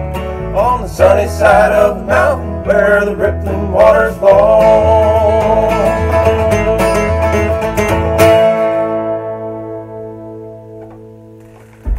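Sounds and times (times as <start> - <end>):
bluegrass band playing: 0.0 - 10.8.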